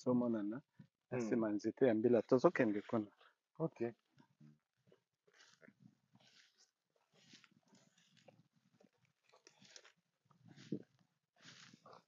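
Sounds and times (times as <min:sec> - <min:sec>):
footsteps through tall grass: 0:04.9 - 0:12.0.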